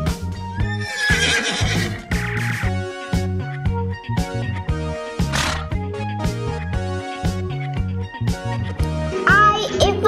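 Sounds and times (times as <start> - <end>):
horse whinnying: 0.6 - 2.6, 5.3 - 5.7.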